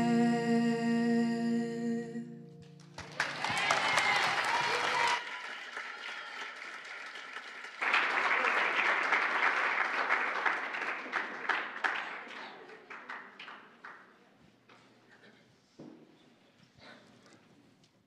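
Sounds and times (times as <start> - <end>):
audience applauding: 2.7 - 14.0.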